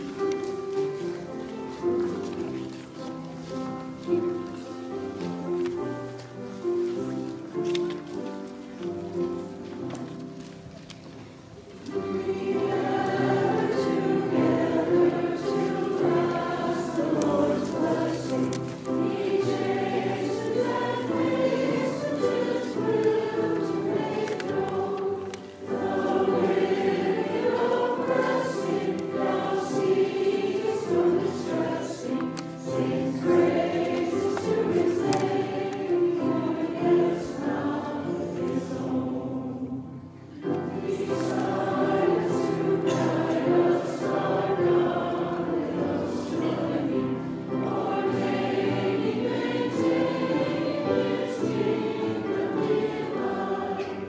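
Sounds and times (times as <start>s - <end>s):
mixed choir singing: 11.8s - 54.0s.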